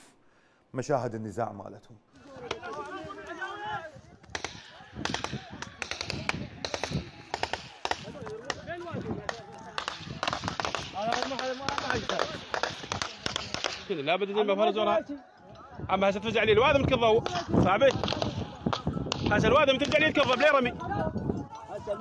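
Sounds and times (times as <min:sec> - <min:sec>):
rapid gunshots: 0:04.3 - 0:14.0, 0:17.2 - 0:20.4.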